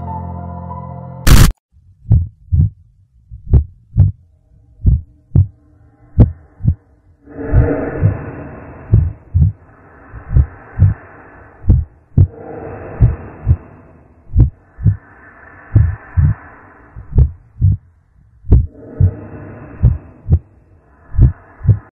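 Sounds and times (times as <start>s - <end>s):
slow heartbeat thumps: 1.3s - 22.0s.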